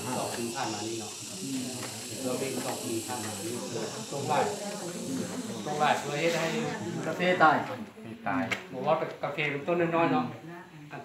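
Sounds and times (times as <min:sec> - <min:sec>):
steady high hiss: 0:00.0 - 0:07.6.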